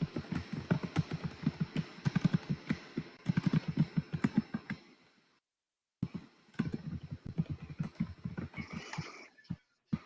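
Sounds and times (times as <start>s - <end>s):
rapid keyboard typing: 0.0s - 4.8s, 6.0s - 8.8s.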